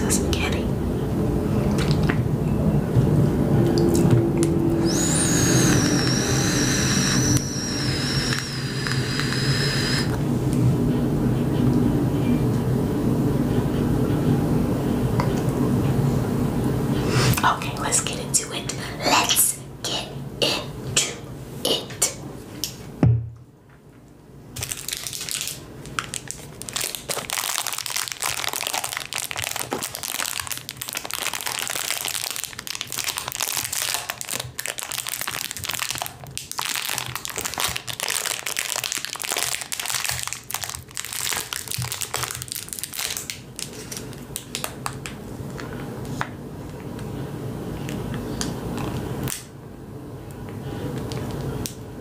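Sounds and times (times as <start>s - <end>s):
thump: 23.0s - 23.4s
cellophane bag crinkling: 24.6s - 45.0s.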